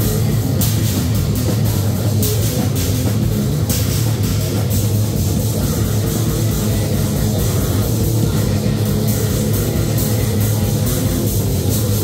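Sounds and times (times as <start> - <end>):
distorted electric guitar: 0.0 - 12.0
drum kit: 0.0 - 12.0.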